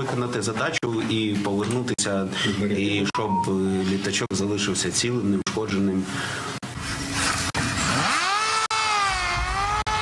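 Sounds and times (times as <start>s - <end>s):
drone motor and propeller whining: 6.8s - 10.0s.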